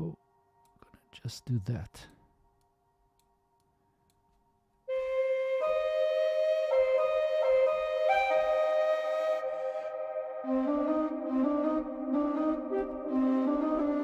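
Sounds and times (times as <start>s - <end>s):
bamboo flute with long reverb: 4.9s - 14.0s.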